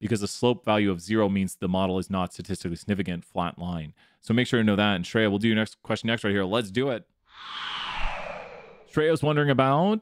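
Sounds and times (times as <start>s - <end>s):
soft airy whoosh: 7.3s - 9.0s.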